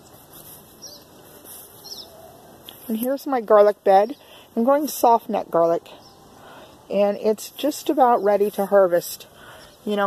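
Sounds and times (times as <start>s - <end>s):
faint outdoor background: 0.0s - 10.0s
small bird chirping: 0.4s - 6.6s.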